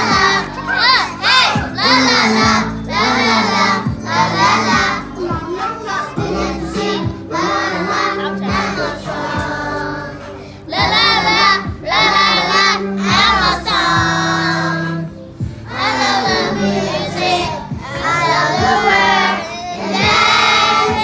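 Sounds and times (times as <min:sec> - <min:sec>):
children singing together: 0:00.0 - 0:21.0
instrumental backing music: 0:00.0 - 0:21.0.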